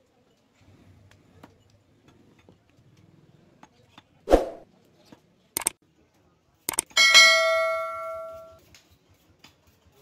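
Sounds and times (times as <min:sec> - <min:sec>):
metallic bell-like ring: 0:07.0 - 0:08.6.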